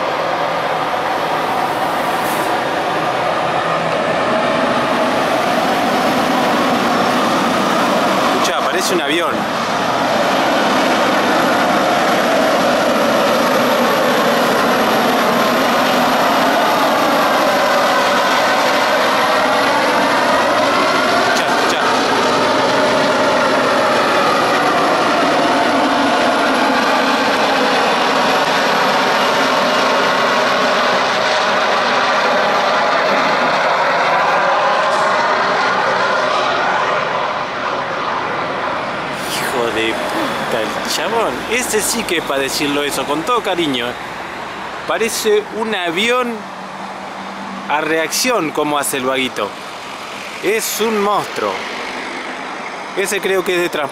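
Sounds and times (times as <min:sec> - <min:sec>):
loud jet-like whine: 0:00.0 - 0:53.9
truck diesel engine under load: 0:00.0 - 0:53.9.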